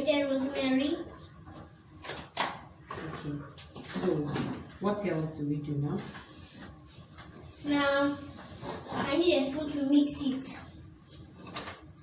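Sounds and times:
people talking: 0:00.0 - 0:01.1, 0:07.6 - 0:08.2, 0:09.0 - 0:10.7.

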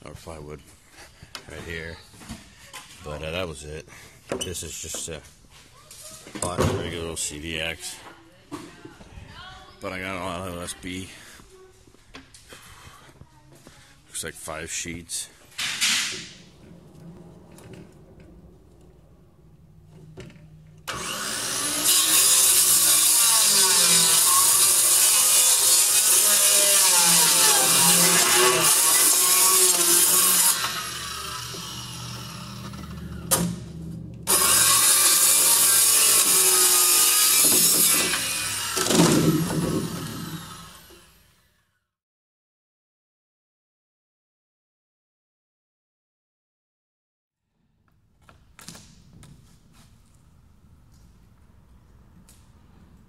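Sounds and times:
circular saw cutting plywood: 0:20.0 - 0:41.5.

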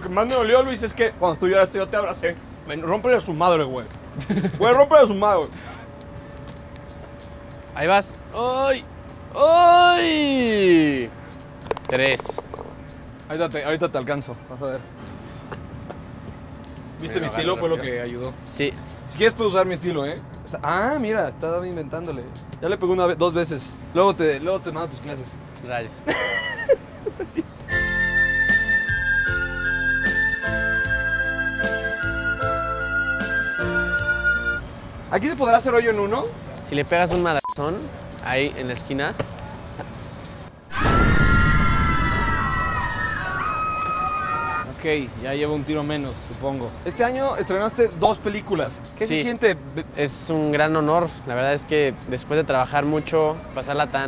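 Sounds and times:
distant city traffic rumble: 0:00.0 - 0:29.8
putter tapping golf ball: 0:11.6 - 0:12.8.

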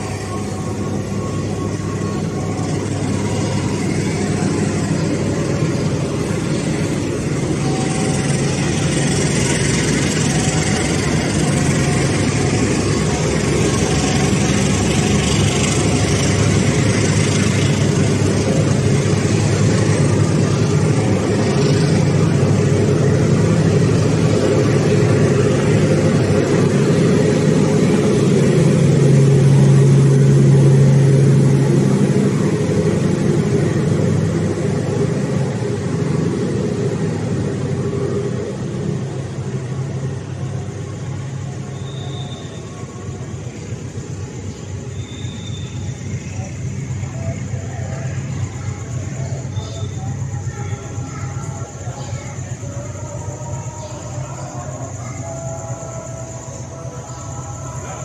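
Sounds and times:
diesel train engine rumble: 0:00.0 - 0:58.0.

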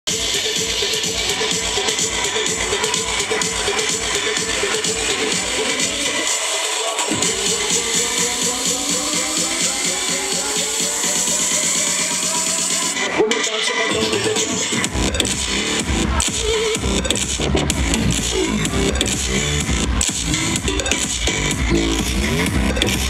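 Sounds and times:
electronic dance music: 0:00.0 - 0:23.0
chopped vocal: 0:00.1 - 0:23.0.

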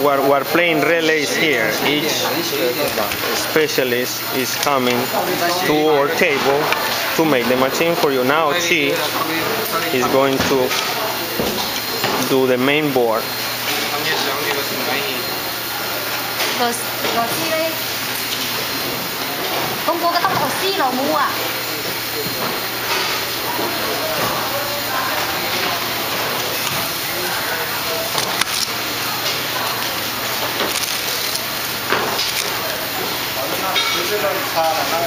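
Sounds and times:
workshop room hiss: 0:00.0 - 0:35.0.

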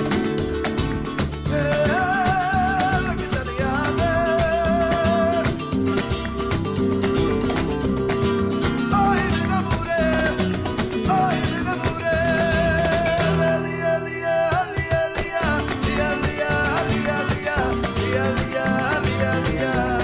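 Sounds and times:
flamenco rumba guitar music: 0:00.0 - 0:20.0.

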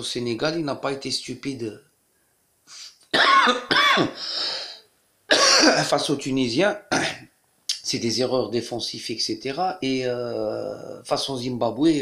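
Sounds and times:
man coughing into his hand: 0:03.1 - 0:04.2, 0:05.3 - 0:05.9, 0:06.9 - 0:07.3.

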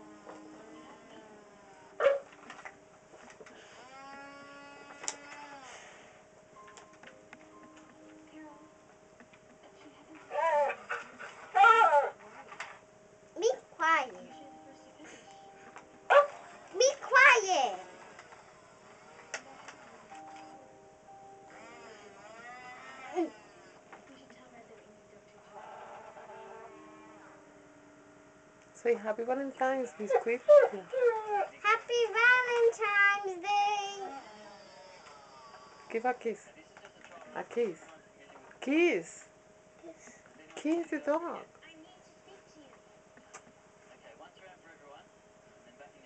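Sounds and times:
toy dog barking: 0:16.1 - 0:17.8
drawn-out whining tone: 0:21.5 - 0:23.8.

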